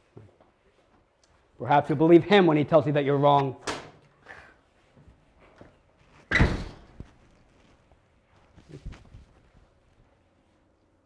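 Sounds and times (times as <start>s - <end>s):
door slamming: 6.3s - 7.0s.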